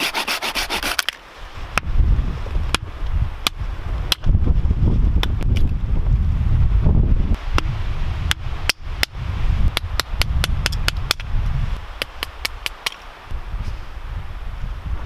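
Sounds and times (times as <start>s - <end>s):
wind rumble on microphone: 1.4s - 15.0s
hatchet splitting wood: 8.3s - 11.3s.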